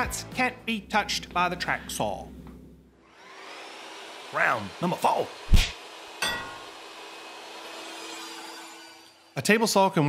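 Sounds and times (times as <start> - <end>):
table saw whirring: 3.0 - 9.4.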